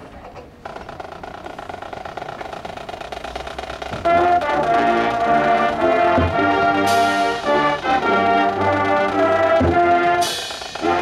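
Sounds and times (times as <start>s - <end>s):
rapid drum roll: 1.2s - 11.0s
marching band: 3.6s - 11.0s.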